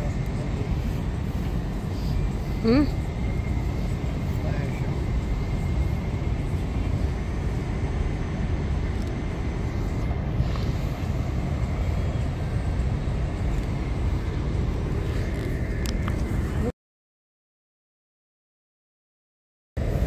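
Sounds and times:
faint thin whine: 0:00.0 - 0:16.7
low rumble of city traffic: 0:00.0 - 0:16.7, 0:19.8 - 0:20.0.

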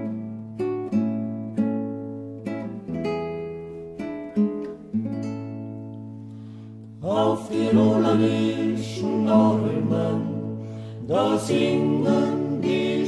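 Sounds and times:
acoustic guitar chords: 0:00.0 - 0:13.0.

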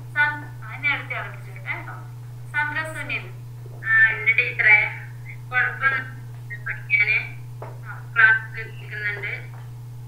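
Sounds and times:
low hum: 0:00.0 - 0:10.0
person speaking over video call: 0:03.8 - 0:09.6.

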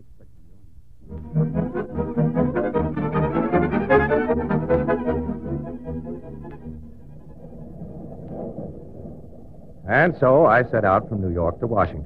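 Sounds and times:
low steady rumble: 0:05.3 - 0:12.0.

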